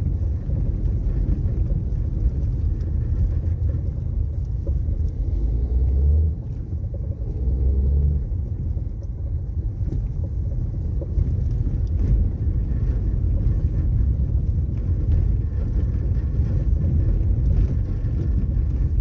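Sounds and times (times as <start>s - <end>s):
car driving over cobblestones: 0.0s - 19.0s.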